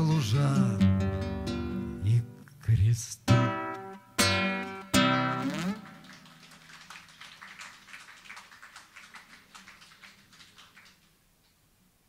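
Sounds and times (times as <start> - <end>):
light scattered applause: 5.3 - 11.3.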